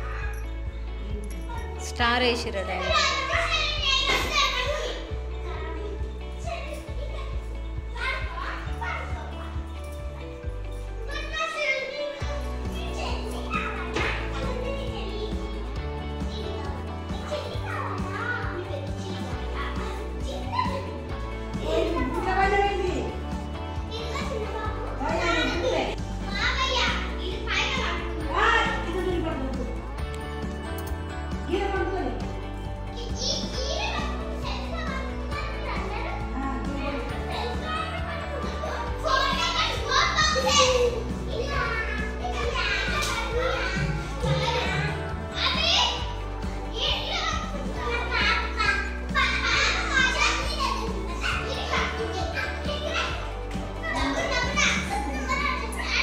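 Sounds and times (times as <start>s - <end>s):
background music: 0.0s - 56.0s
children calling out: 23.8s - 28.9s, 32.9s - 56.0s.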